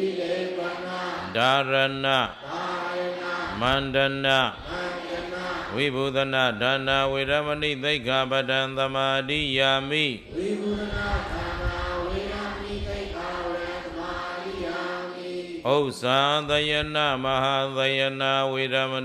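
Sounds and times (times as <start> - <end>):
congregation repeating together: 0.0 - 19.0
monk chanting: 0.0 - 19.0.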